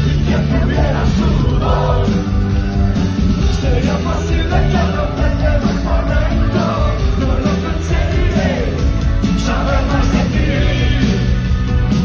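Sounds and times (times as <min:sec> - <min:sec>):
man singing: 0:00.0 - 0:02.2, 0:03.4 - 0:11.4
rock band playing live: 0:00.0 - 0:12.0.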